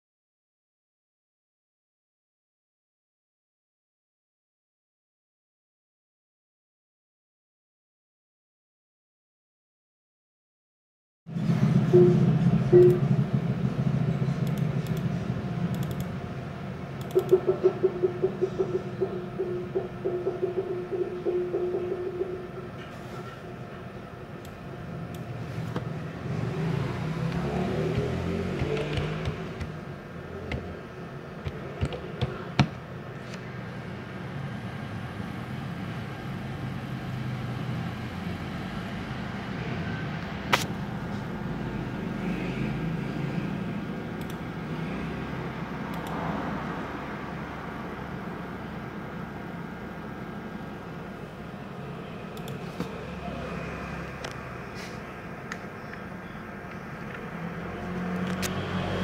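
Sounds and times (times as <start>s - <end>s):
computer keys and mouse clicking: 14.4s - 15.1s, 15.7s - 16.2s, 17.0s - 22.4s, 27.2s - 29.8s, 31.4s - 33.4s, 44.1s - 44.6s, 45.9s - 46.3s, 52.4s - 53.0s.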